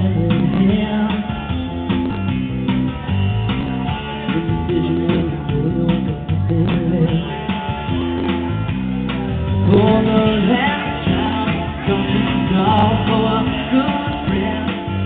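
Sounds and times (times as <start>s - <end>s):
man singing: 0.0s - 2.2s, 4.3s - 7.6s, 9.6s - 15.0s
live rock guitar: 0.0s - 15.0s.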